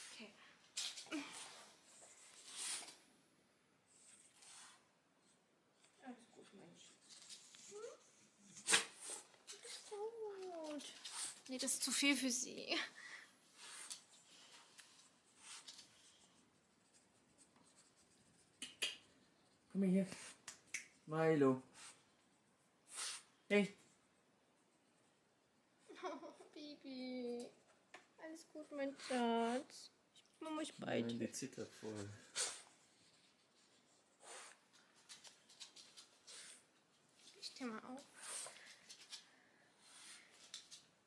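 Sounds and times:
soft scratchy rustle: 0:03.9 - 0:12.0.

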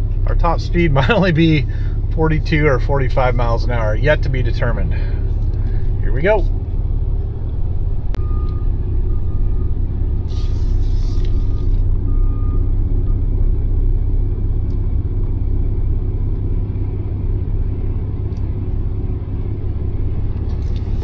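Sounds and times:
vehicle engine and road rumble: 0:00.0 - 0:21.0
short hiss of air: 0:10.2 - 0:11.8.

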